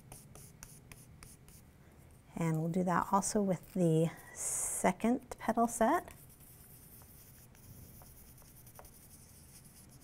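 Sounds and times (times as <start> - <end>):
brush rubbing on paper: 6.2 - 10.0.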